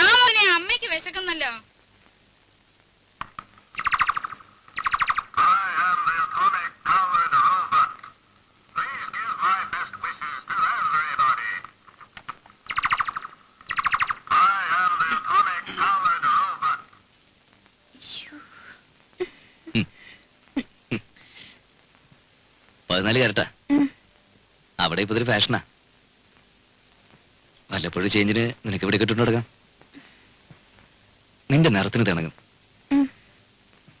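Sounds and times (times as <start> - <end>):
buzzing electronic beeps: 12.7 - 14.2.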